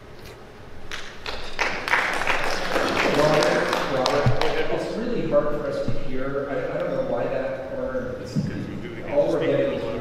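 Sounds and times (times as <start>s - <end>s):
audience applauding: 0.9s - 4.8s.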